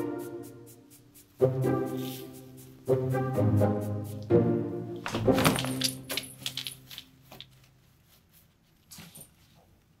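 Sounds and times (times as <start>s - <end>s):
cat playing with tinsel toy: 5.1s - 7.3s.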